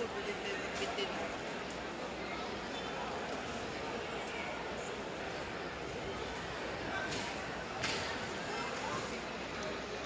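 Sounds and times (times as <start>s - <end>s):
large crowd talking and calling: 0.0s - 10.0s.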